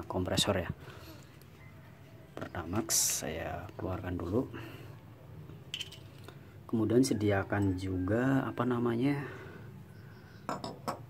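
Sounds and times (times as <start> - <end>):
metal parts knocking and clinking: 5.7 - 6.2.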